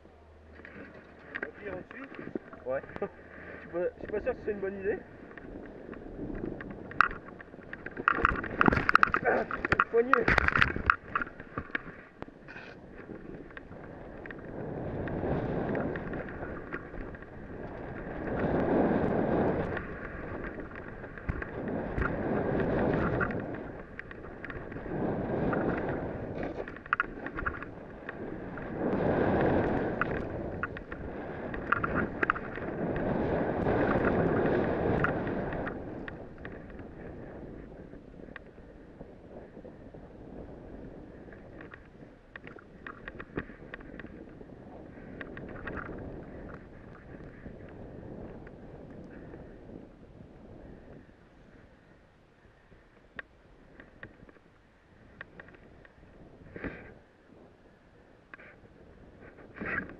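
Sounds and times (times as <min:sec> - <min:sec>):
wind on microphone: 0:00.0 - 0:59.9.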